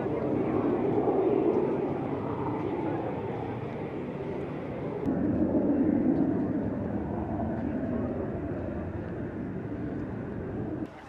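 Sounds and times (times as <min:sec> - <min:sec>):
distant jet aircraft rumble: 0:00.0 - 0:11.0.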